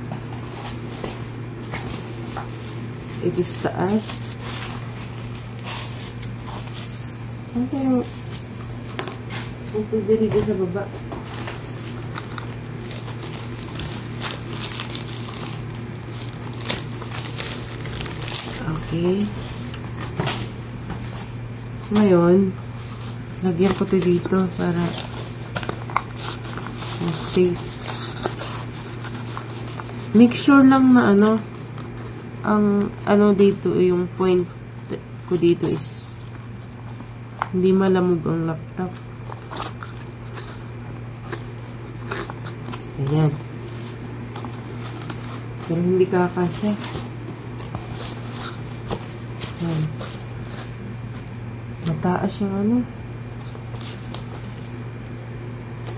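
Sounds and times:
packing paper rustling: 0:00.0 - 0:37.6, 0:38.8 - 0:52.0, 0:53.3 - 0:55.9
steady low hum: 0:00.0 - 0:55.9.

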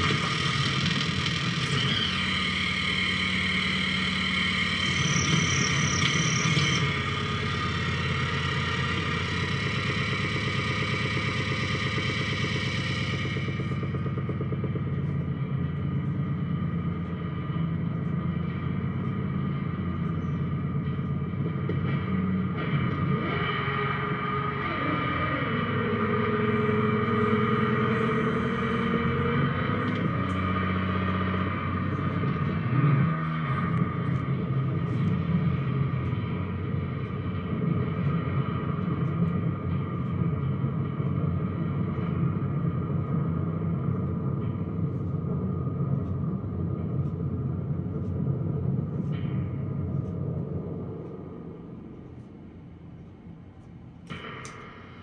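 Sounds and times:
high electronic hiss: 0:00.0 - 0:14.9
electronic noise drone: 0:00.0 - 0:55.0
sliding low electronic tone: 0:00.0 - 0:55.0.

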